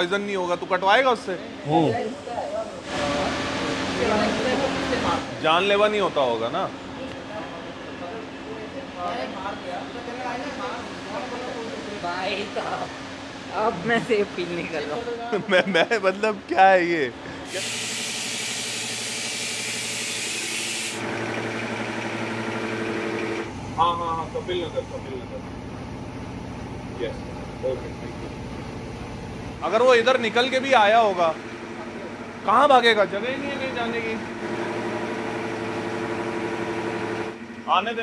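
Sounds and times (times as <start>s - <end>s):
mechanical hum with held tones: 0.0s - 38.0s
loud air hiss: 17.4s - 21.0s
machinery motor hum: 21.0s - 38.0s.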